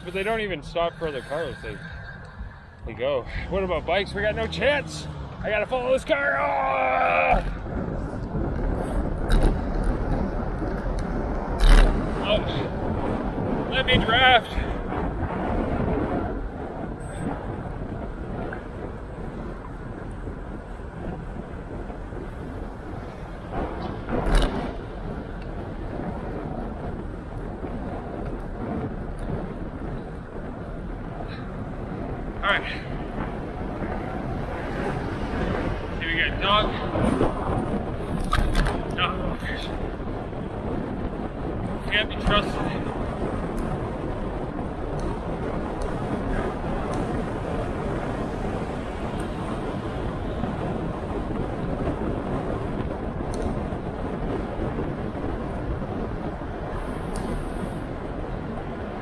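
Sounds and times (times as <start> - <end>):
road noise: 0.0 - 59.0
wind rumble: 0.0 - 59.0.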